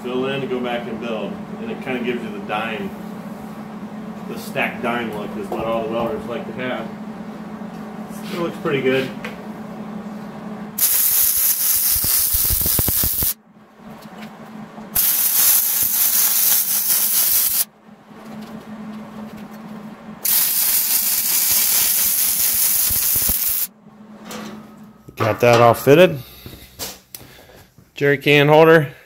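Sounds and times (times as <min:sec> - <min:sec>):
welder crackling hiss: 0:10.8 - 0:13.4, 0:15.0 - 0:17.7, 0:20.2 - 0:23.7.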